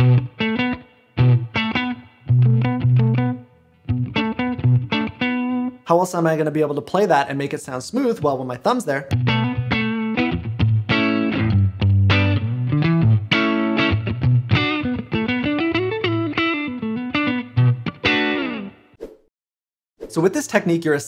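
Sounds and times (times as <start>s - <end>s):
electric guitar melodic phrase: 0.0s - 5.8s, 9.1s - 18.8s.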